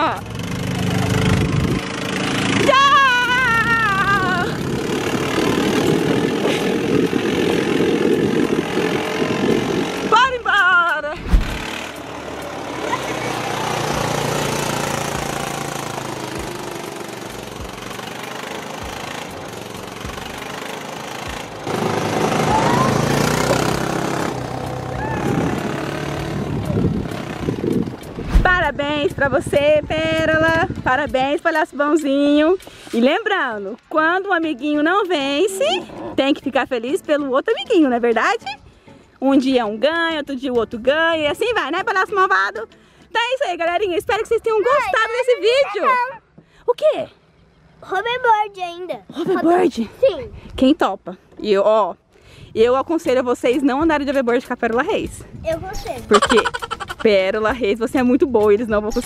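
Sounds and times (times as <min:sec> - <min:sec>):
small car engine running: 0:00.0 - 0:10.3, 0:11.3 - 0:28.2, 0:56.1 - 0:57.0
wind on microphone: 0:01.1 - 0:02.9, 0:03.9 - 0:10.3, 0:11.1 - 0:11.7, 0:25.0 - 0:31.3
voices calling out: 0:21.8 - 0:23.7, 0:44.4 - 0:48.6.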